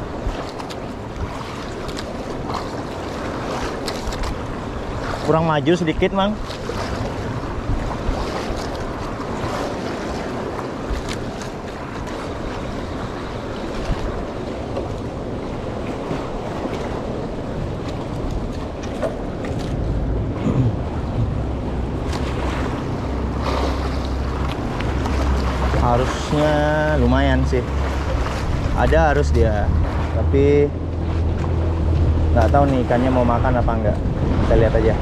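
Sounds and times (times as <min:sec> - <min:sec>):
sea water sloshing around boat: 0:00.0 - 0:35.0
wind on microphone: 0:06.0 - 0:35.0.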